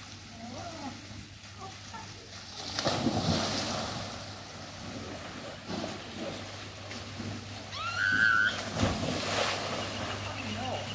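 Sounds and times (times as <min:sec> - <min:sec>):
pool water splashing: 0:00.0 - 0:10.9.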